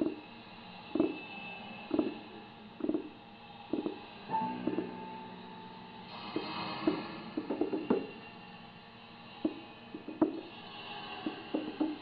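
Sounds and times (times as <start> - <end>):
low muffled thuds: 3.7 - 4.0.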